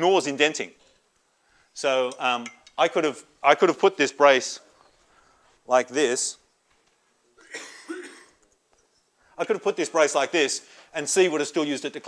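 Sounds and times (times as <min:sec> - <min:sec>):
person coughing: 0:07.4 - 0:08.4.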